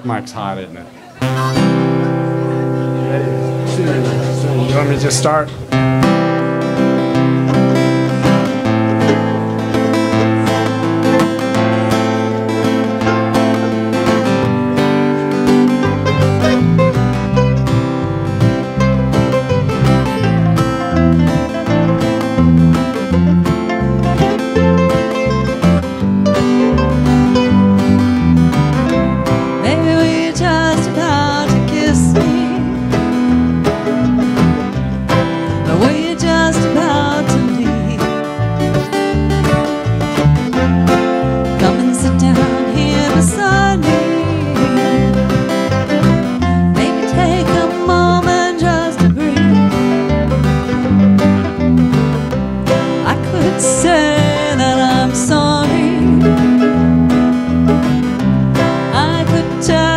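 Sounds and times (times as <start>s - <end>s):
acoustic guitar strumming: 0.0s - 59.9s
string and lead instruments: 0.0s - 59.9s
electric bass: 1.2s - 59.9s.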